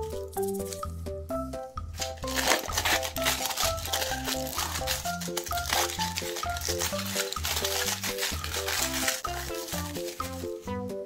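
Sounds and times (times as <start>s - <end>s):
bouncy background music: 0.0s - 11.0s
aluminium foil crinkling: 2.0s - 10.7s.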